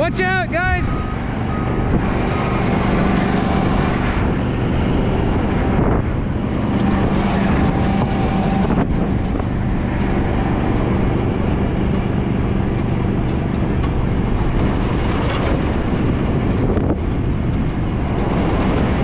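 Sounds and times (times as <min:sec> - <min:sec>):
truck engine droning: 0:00.0 - 0:19.0
wind buffeting microphone: 0:00.0 - 0:19.0.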